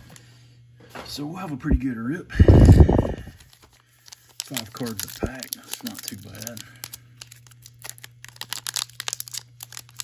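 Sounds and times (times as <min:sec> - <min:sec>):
foil wrapper crinkling: 0:02.5 - 0:10.0.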